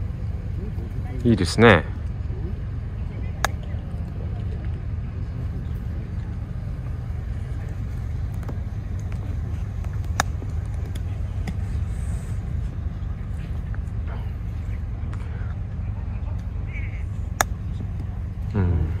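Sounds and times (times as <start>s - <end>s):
steady low rumble: 0.0s - 19.0s
golf club striking ball: 17.3s - 17.7s.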